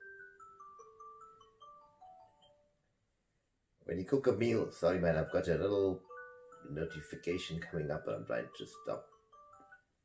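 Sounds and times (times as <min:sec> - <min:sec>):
phone notification melody: 0:00.0 - 0:02.7, 0:05.1 - 0:09.9.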